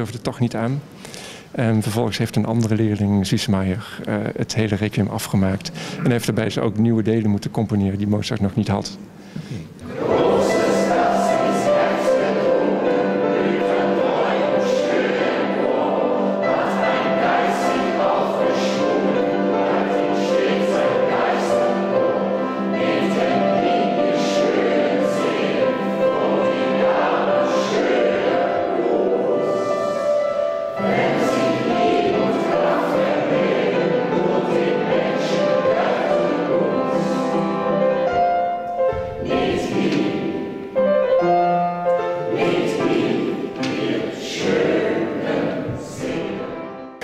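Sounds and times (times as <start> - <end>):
choir singing held notes: 9.8 - 47.0.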